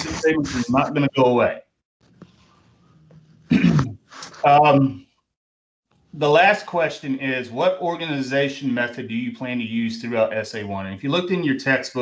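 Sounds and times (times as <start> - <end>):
man coughing: 3.5 - 4.0
faint room noise: 5.9 - 12.0.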